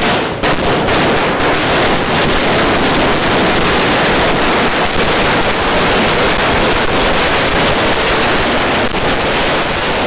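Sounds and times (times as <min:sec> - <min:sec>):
firecrackers cracking rapidly: 0:00.0 - 0:10.0.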